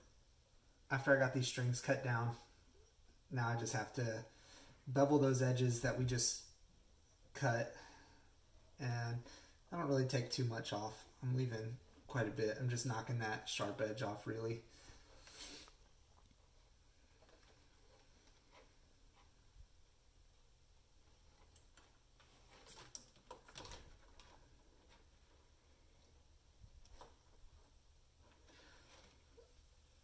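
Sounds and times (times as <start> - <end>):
faint ticks and scrapes: 14.8 - 19.9, 21.0 - 30.0.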